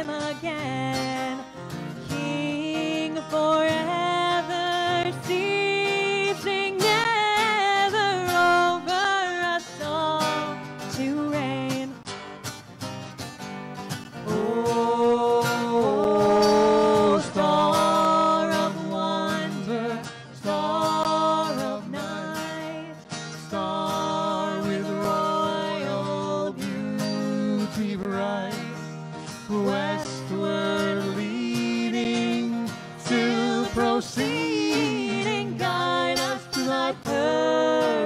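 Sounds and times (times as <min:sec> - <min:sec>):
woman singing: 0:00.0 - 0:12.1, 0:14.2 - 0:28.8, 0:29.5 - 0:38.0
acoustic guitar: 0:00.0 - 0:38.0.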